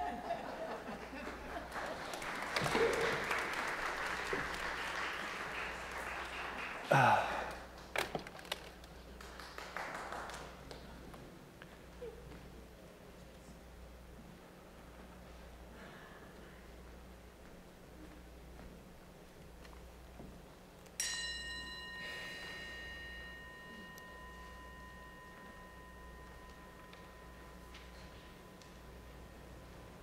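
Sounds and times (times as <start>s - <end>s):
faint low hum: 8.7s - 30.0s
singing bowl ringing: 21.0s - 30.0s.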